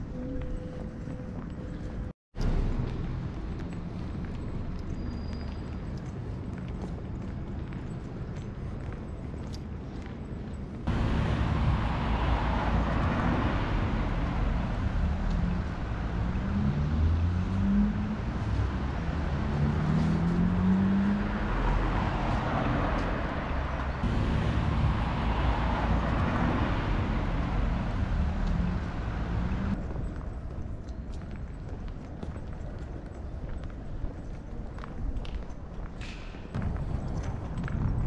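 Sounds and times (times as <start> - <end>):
cars passing: 10.8 - 30.4
car engine speeding up: 24.0 - 29.8.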